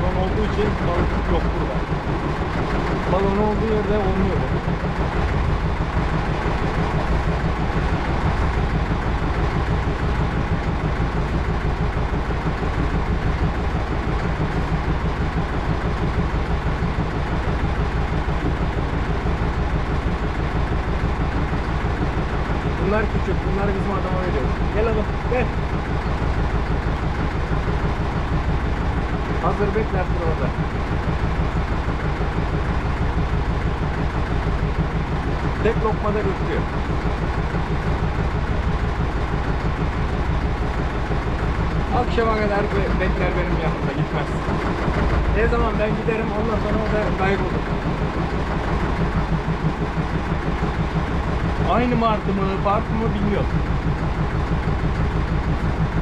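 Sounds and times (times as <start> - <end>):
boat engine idling: 0.0 - 56.0.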